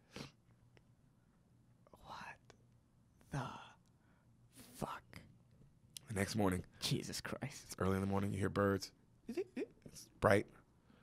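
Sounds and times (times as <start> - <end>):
person whispering breathily: 2.0 - 2.5.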